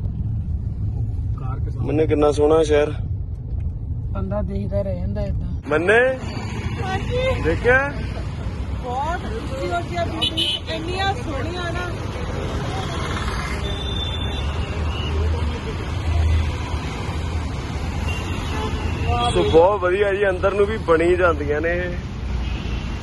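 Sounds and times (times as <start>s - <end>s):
traffic rumble: 0.0s - 23.0s
car horn toot: 10.2s - 10.8s.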